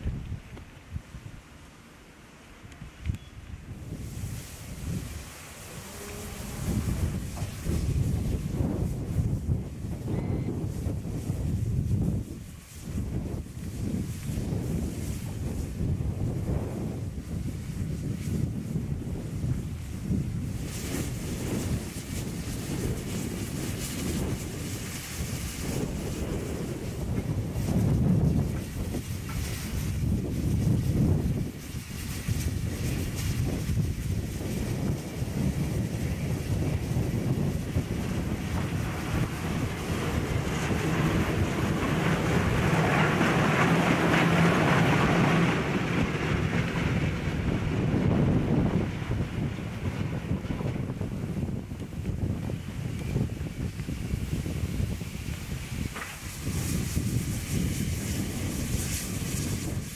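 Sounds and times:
wind buffeting microphone: 0.0s - 1.6s, 2.6s - 59.9s
steam locomotive moving slowly: 0.0s - 59.9s
steam hissing: 3.8s - 46.8s, 52.2s - 59.9s.

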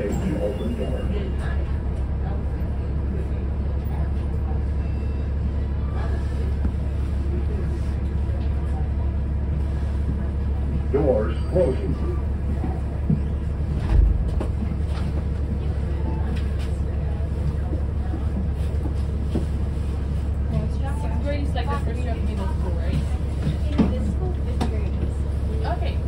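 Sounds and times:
bus engine rumble: 0.0s - 26.0s
indistinct passenger voices: 0.0s - 26.0s.

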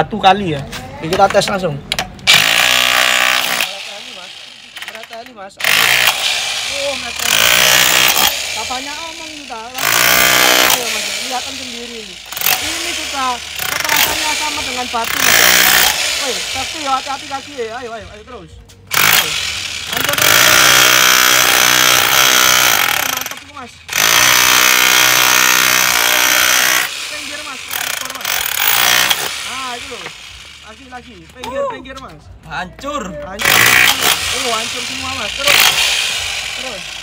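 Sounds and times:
hammer drill chiselling concrete: 2.3s - 18.0s, 18.9s - 31.3s, 33.4s - 37.0s.

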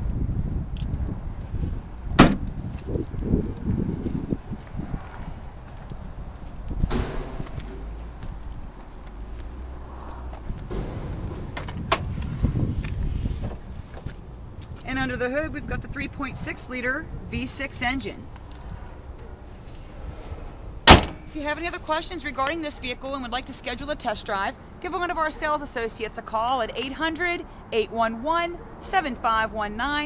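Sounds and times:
wind noise: 0.0s - 21.7s
rumbling handling noise: 0.6s - 14.9s
car trunk lid slamming shut: 2.2s - 2.5s, 6.9s - 7.8s, 20.8s - 21.3s
short clunks: 2.2s - 2.6s, 6.8s - 8.4s, 20.8s - 21.3s.

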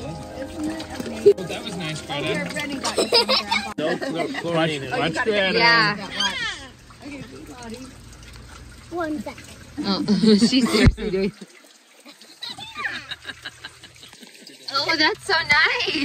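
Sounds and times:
water trickling onto stone: 5.6s - 16.0s.

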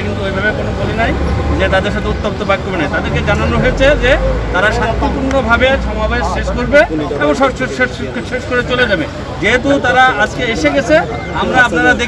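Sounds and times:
man speaking into microphones: 0.0s - 12.0s
street noise with low rumble: 0.0s - 12.0s.

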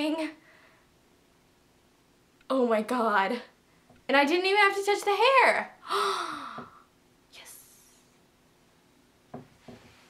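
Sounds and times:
girl gasping: 5.8s - 6.9s.

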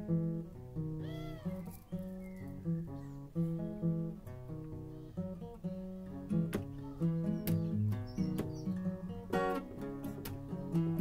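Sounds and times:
acoustic guitar picking: 0.0s - 11.0s.

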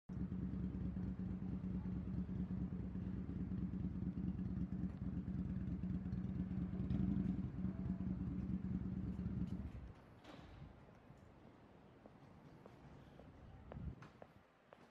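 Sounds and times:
road traffic rumble: 0.1s - 11.2s, 12.7s - 14.0s
constant low hum: 0.1s - 14.1s.

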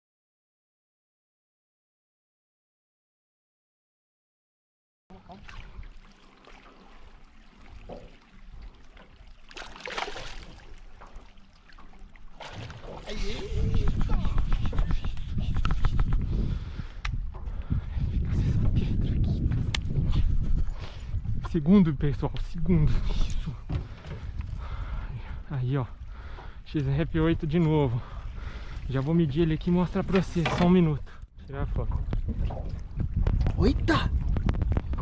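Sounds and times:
fish thrashing water: 9.2s - 14.2s
wind rumble on microphone: 13.0s - 35.0s.

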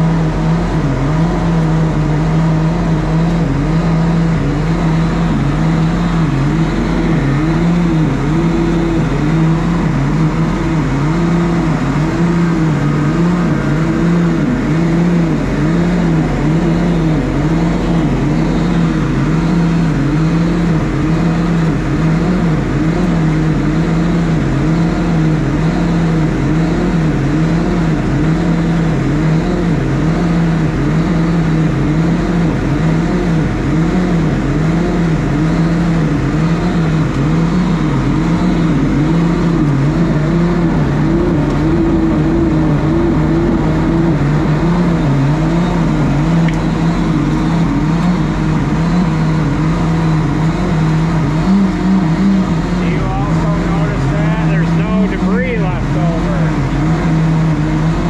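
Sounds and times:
machine drone wobbling in pitch: 0.0s - 58.0s.

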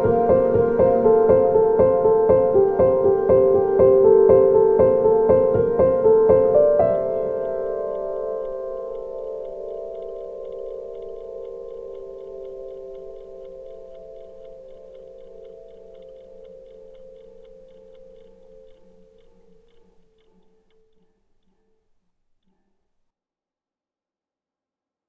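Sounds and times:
held keyboard chord: 0.0s - 20.9s
fast clock-like ticking: 0.0s - 21.2s.

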